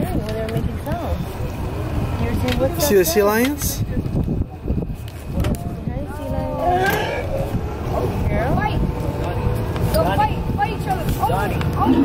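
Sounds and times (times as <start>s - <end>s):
boat engine rumbling: 0.0s - 12.0s.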